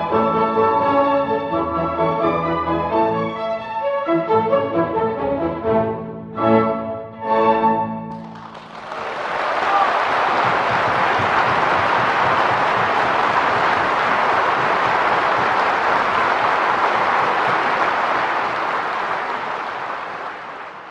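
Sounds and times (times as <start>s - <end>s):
audience applauding: 8.1s - 20.9s.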